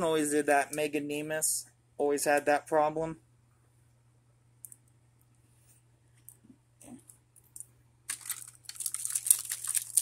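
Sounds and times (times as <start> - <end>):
plastic toys clattering: 8.1 - 10.0.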